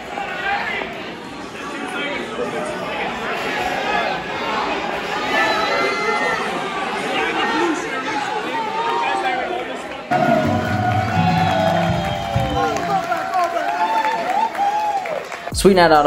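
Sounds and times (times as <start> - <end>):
crowd chattering and calling out: 0.0 - 14.0
music with strong bass line: 10.1 - 13.0.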